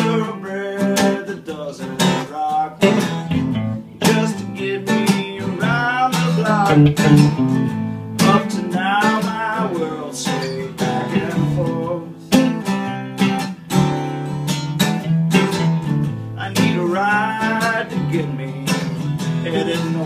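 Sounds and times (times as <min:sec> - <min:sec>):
acoustic guitar strummed: 0:00.0 - 0:20.0
electric guitar lead line: 0:02.8 - 0:04.2, 0:06.6 - 0:08.5, 0:11.1 - 0:11.8
wavering melody: 0:06.7 - 0:08.0.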